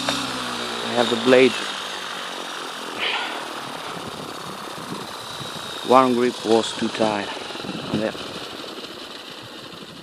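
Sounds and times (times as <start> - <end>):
helicopter rotor noise: 0.0 - 10.0
thin high whine: 2.5 - 6.6.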